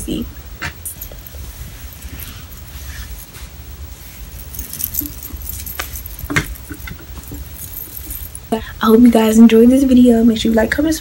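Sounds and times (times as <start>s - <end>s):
low steady hum: 0.0s - 11.0s
metal bangles jingling: 0.8s - 8.6s.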